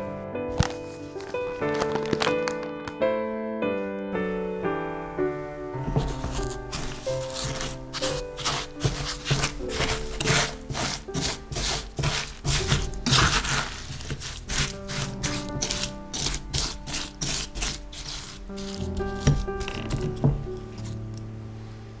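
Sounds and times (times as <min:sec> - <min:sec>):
soft piano music: 0:00.0 - 0:22.0
spatula scraping sugar in metal pan: 0:06.0 - 0:21.0.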